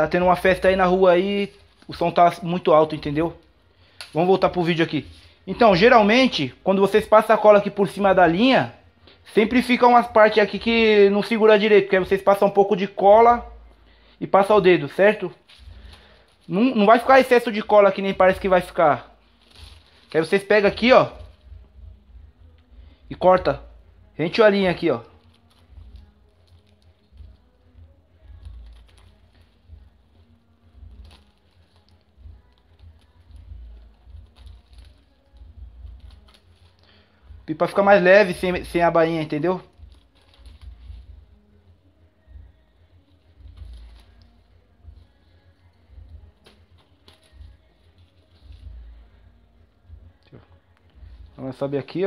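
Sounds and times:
thin paper crackling: 0:14.9 - 0:21.6, 0:24.5 - 0:37.1, 0:38.2 - 0:41.6, 0:43.0 - 0:49.1
scissors snipping paper: 0:25.2 - 0:29.6, 0:30.8 - 0:36.8.

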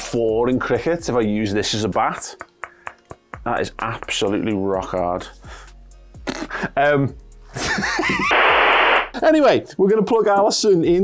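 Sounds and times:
static hiss: 0:08.2 - 0:09.2.

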